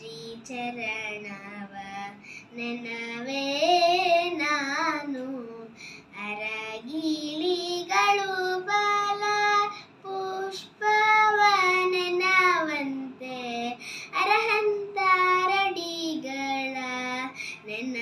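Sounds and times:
girl singing unaccompanied: 0.0 - 18.0.

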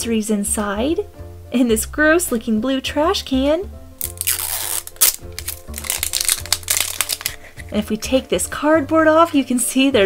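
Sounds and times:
background music: 0.0 - 10.0
plastic wrapping crinkling: 4.0 - 7.7.

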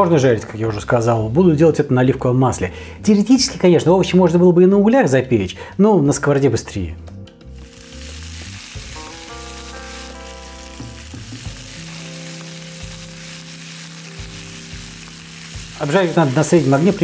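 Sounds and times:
vegetables sizzling in a frying pan: 7.6 - 17.0.

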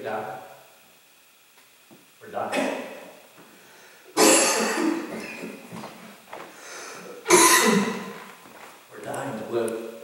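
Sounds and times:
man coughing: 2.5 - 2.9, 4.2 - 5.5, 7.2 - 8.2.

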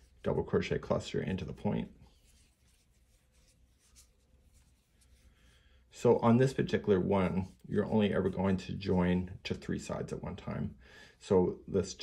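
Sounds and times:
crochet hook scratching yarn: 1.6 - 5.3.

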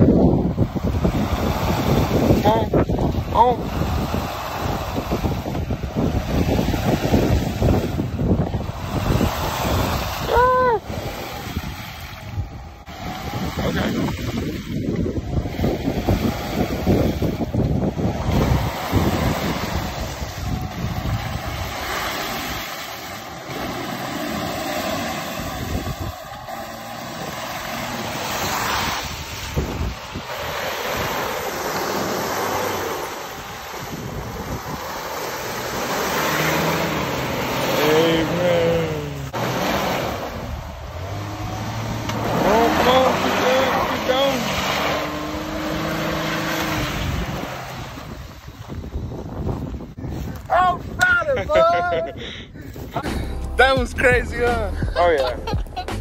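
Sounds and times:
car engine revving: 0.0 - 48.6, 53.0 - 56.0
wheels churning mud and water: 0.0 - 56.0.

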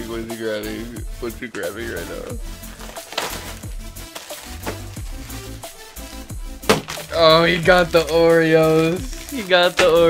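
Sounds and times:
background music with bass line: 0.0 - 10.0
rustling: 2.4 - 10.0.

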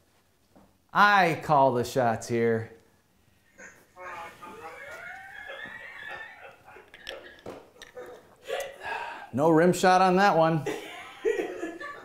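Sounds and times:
speech: 1.0 - 2.8, 9.4 - 10.6
faint voice: 3.6 - 6.2.

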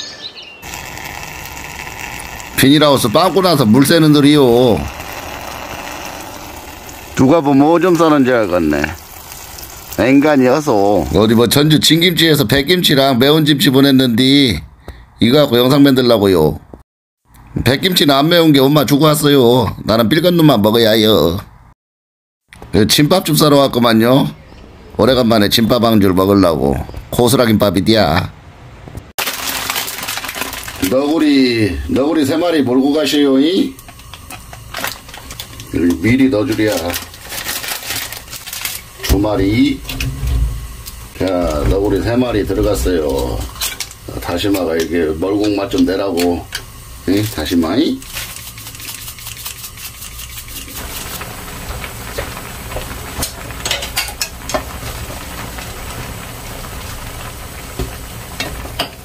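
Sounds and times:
noodles simmering in pan: 0.6 - 11.2, 29.2 - 31.6, 32.2 - 59.0
seasoning shaken into pan: 29.2 - 31.0, 48.0 - 53.1
plastic packets crinkling: 29.2 - 31.2, 34.4 - 39.0, 48.0 - 51.3.

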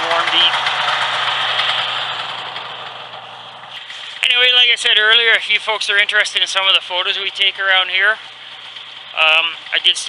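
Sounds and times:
snowmobile engine running: 0.0 - 10.0.

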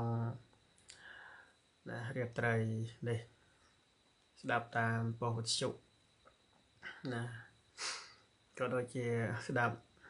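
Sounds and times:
man speaking: 0.0 - 0.4, 1.9 - 3.3, 4.4 - 5.8, 6.9 - 7.5, 8.6 - 9.8
faint soft hiss: 0.0 - 10.0.

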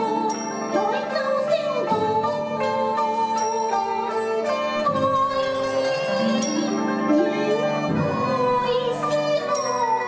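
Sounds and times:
plucked zither notes: 0.0 - 10.0.

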